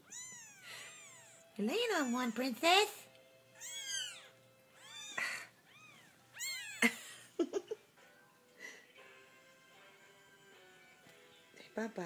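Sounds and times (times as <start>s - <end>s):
kittens mewing: 0.0s - 2.5s, 3.5s - 7.0s.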